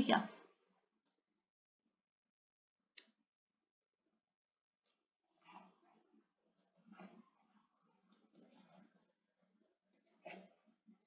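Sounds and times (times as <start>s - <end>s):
computer mouse clicks: 1.0s - 1.2s, 4.8s - 5.7s, 6.5s - 7.3s, 8.0s - 8.9s, 9.9s - 10.7s.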